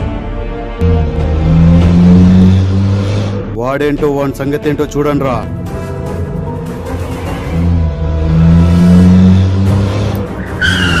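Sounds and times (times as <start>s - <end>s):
car tyres squealing: 6.8s - 11.0s.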